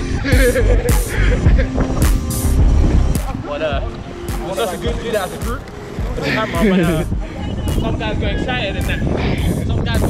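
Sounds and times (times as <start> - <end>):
music with heavy bass beat: 0.0 - 10.0.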